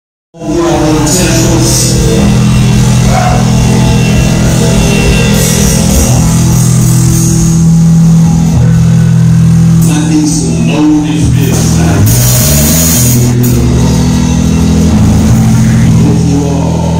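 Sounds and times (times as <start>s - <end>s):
live rock band playing: 0.4s - 16.9s.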